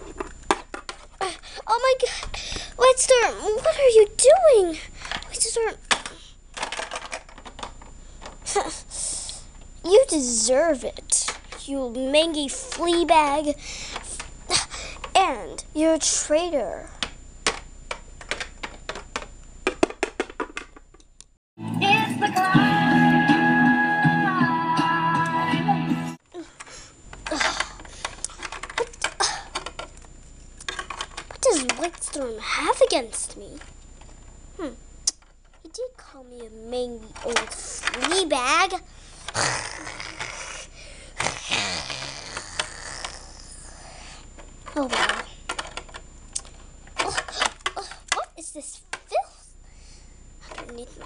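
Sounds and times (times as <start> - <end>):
plastic toy clicks: 5.9 - 7.7.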